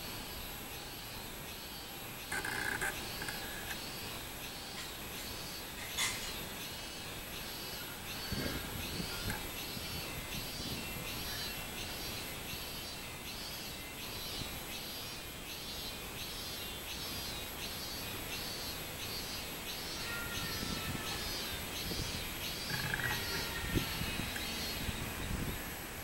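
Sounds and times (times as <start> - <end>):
cicada singing: 0.0 - 26.0.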